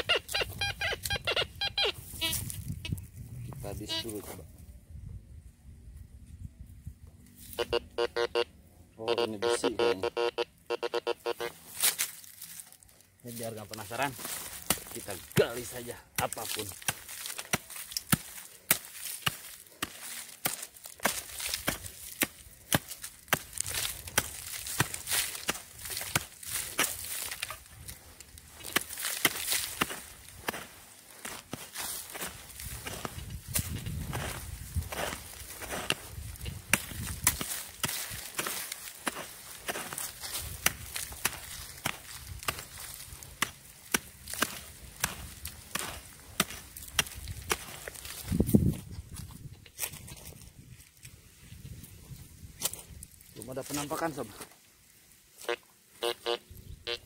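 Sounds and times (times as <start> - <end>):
hoe chopping into hard soil: 14.3 - 15.6, 16.2 - 27.6, 28.6 - 48.2
hoe scraping dirt: 16.7 - 48.3.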